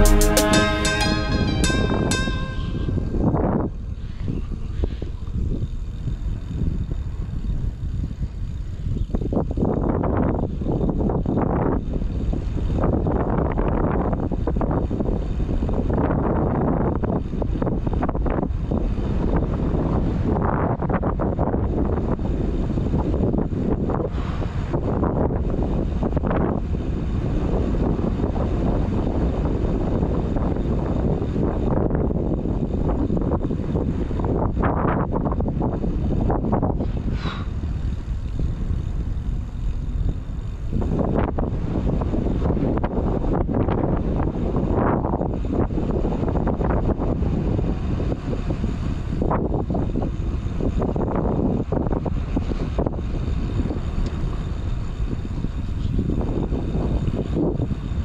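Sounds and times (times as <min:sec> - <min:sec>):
wind on microphone: 0:00.0 - 0:58.0.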